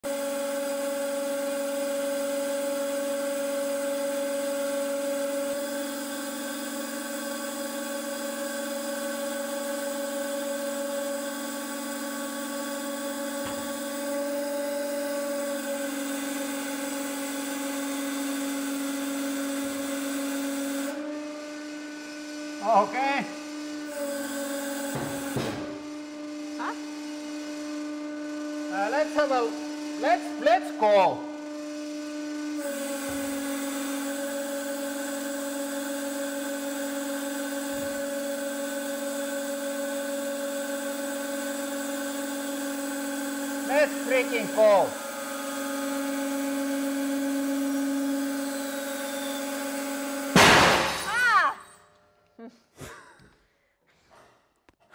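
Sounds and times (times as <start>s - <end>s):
hydraulic press humming: 0.0s - 52.0s
loud glass bang: 50.4s - 51.2s.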